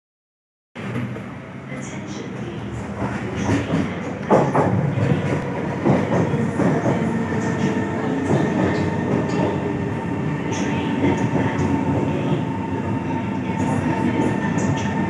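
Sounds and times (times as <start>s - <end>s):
train rumble: 0.8s - 15.0s.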